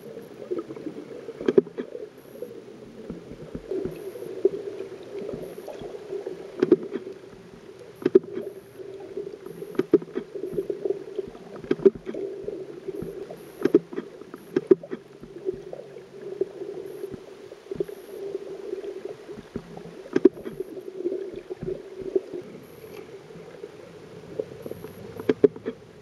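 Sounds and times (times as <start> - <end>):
muffled underwater hum: 0.0 - 26.0
sharp clicks and knocks: 8.0 - 8.4, 11.6 - 12.2.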